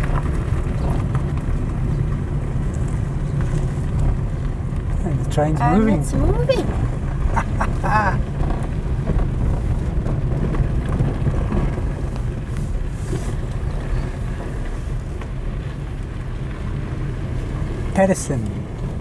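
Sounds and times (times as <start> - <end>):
car moving slowly: 0.0 - 19.0.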